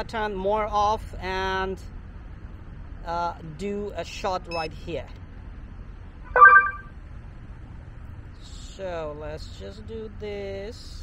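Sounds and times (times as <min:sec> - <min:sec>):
short electronic beep: 0:06.3 - 0:06.9.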